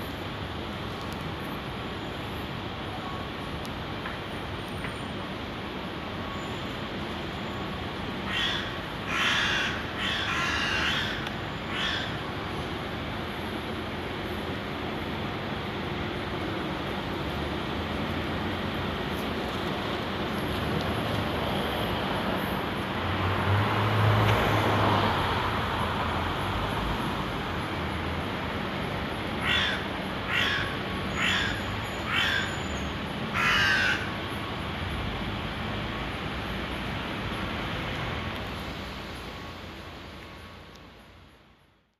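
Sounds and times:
city background noise: 0.0s - 41.9s
crow calling harshly: 8.3s - 12.2s, 29.4s - 32.7s, 33.3s - 34.1s.

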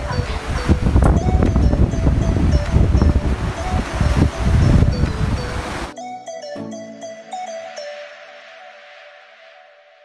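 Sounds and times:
wind buffeting microphone: 0.0s - 5.9s
rough sea: 0.0s - 6.0s
background music simple melody: 0.0s - 10.0s.

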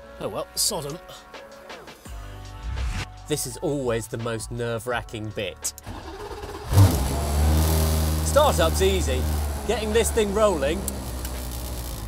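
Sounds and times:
car engine starting and idling: 5.8s - 12.0s.

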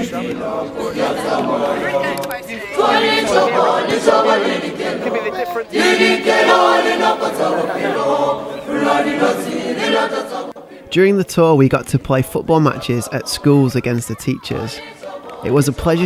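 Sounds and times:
choir singing a cappella: 0.0s - 10.9s, 12.4s - 16.0s.

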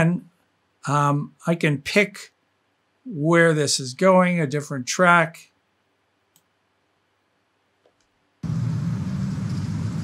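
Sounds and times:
faint clicks: 6.3s - 6.5s
low rumble under hiss: 8.4s - 10.0s.

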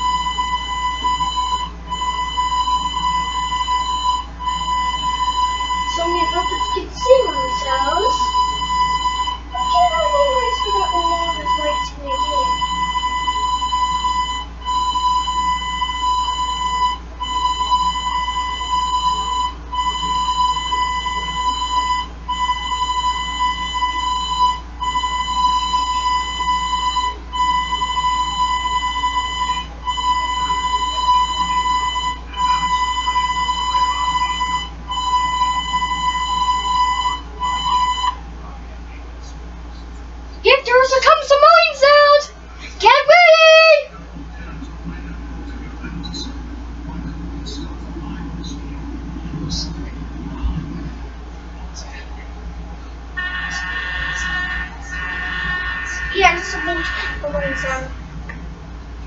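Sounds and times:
buzzy electronic beep tone: 0.0s - 38.1s, 53.2s - 57.9s
low electrical hum: 0.0s - 59.0s.

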